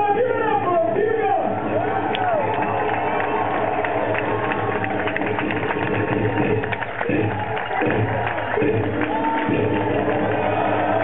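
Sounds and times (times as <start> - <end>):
crowd cheering: 0.0 - 11.0
music with pulsing bass beat: 1.4 - 11.0
sharp claps or noisemakers: 2.0 - 11.0.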